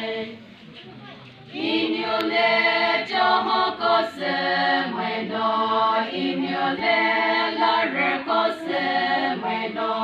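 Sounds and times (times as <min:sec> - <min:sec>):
women's choir singing unaccompanied: 0:00.0 - 0:00.5, 0:01.5 - 0:10.0.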